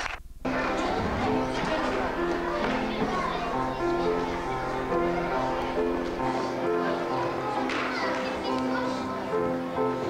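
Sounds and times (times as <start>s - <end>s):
children singing: 0.5s - 10.0s.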